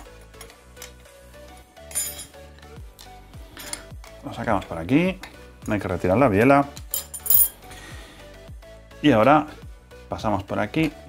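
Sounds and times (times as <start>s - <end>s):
quiet background music: 0.0s - 11.0s
light metallic clinks: 6.9s - 7.6s.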